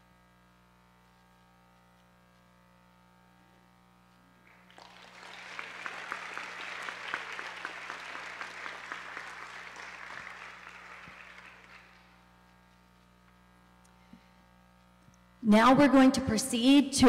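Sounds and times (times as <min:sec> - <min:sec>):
audience applauding: 0:04.5 - 0:12.2.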